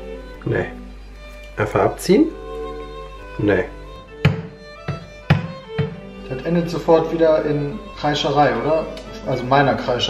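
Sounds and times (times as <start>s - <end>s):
background music with violin: 0.0s - 10.0s.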